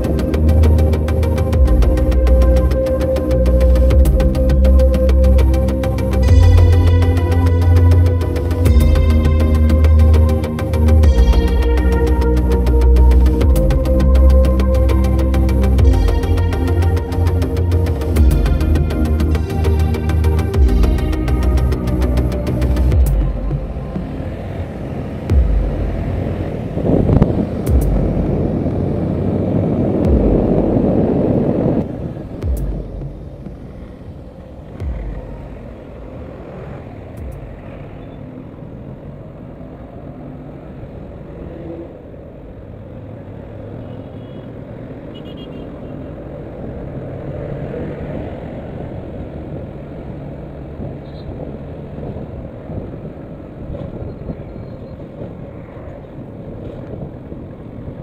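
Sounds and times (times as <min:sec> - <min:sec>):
motorcycle engine: 0:00.0 - 0:38.2
road and wind noise: 0:00.0 - 0:58.0
low thumps: 0:15.8 - 0:28.9, 0:29.9 - 0:36.3.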